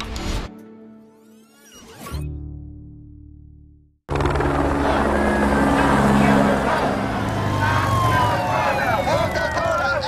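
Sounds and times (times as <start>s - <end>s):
low engine drone: 4.1s - 9.8s
voices: 4.6s - 10.0s
siren sliding down in pitch: 5.4s - 10.0s.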